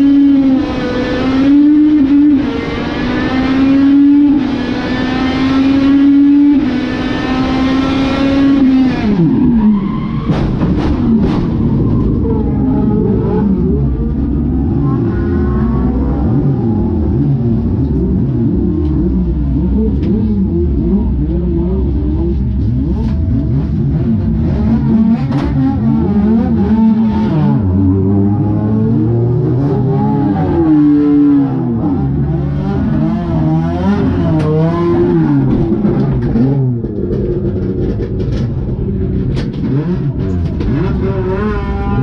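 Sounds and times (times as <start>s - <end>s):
race car engines revving: 0.0s - 42.0s.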